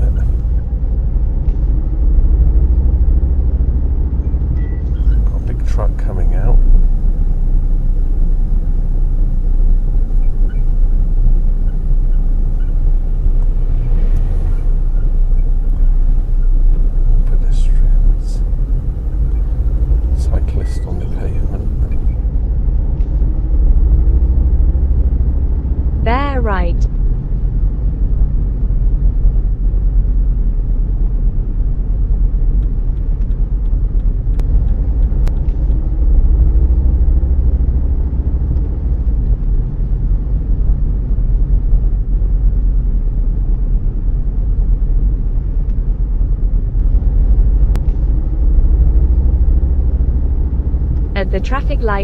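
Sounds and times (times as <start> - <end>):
car engine and road rumble: 0.0 - 52.0.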